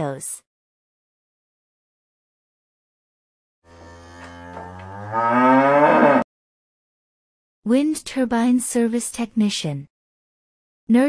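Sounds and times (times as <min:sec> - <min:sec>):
cow mooing: 0:03.7 - 0:06.3.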